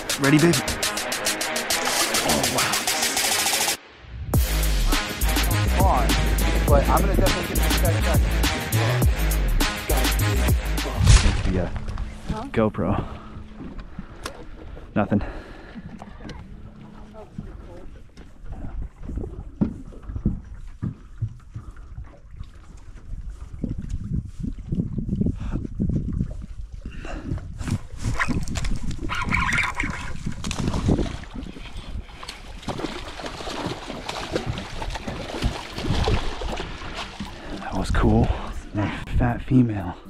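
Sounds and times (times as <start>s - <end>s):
water noise: 0.0s - 40.0s
wind buffeting microphone: 11.2s - 33.2s
fish splashing at water surface: 28.3s - 37.6s.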